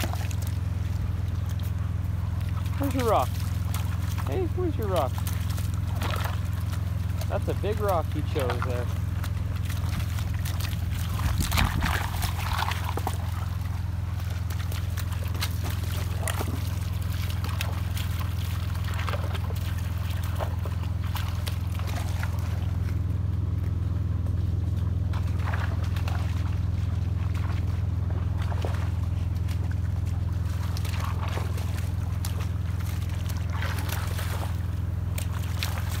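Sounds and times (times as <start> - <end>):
dog wading through splashing water: 0.0 - 36.0
steady low hum: 0.0 - 36.0.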